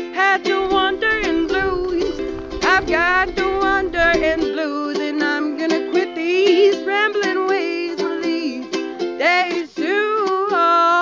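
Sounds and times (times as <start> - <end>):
person singing blues: 0.0 - 11.0
plucked strings: 0.0 - 11.0.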